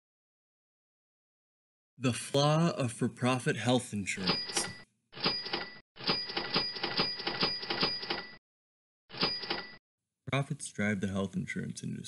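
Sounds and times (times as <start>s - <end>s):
cash register clatter: 4.3s - 8.4s, 9.1s - 9.8s.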